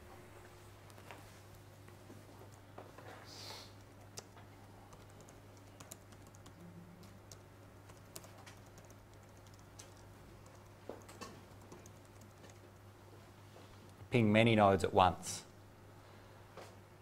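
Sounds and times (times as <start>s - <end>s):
low steady hum: 0.0s - 17.0s
keyboard typing clicks: 3.8s - 12.8s.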